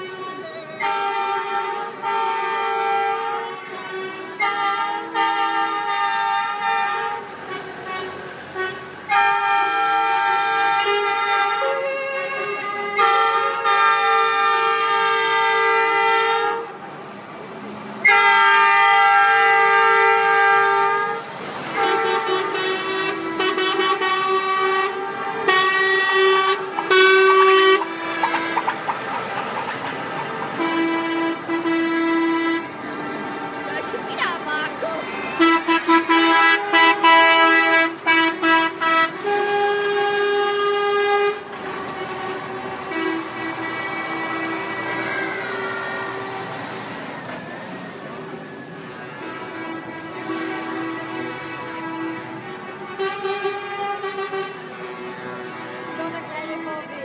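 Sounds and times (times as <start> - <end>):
truck horns blasting: 0.0 - 16.8, 18.0 - 45.1, 49.1 - 56.7
lorry engines passing slowly: 0.0 - 57.0.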